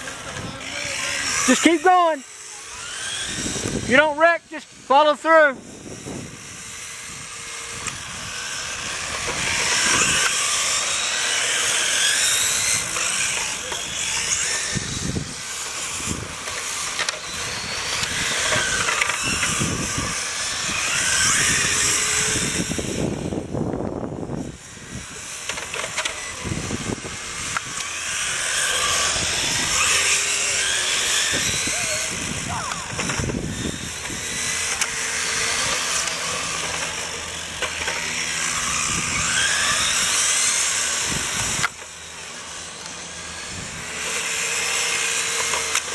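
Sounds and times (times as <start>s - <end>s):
model car motors whining: 0.0s - 45.9s.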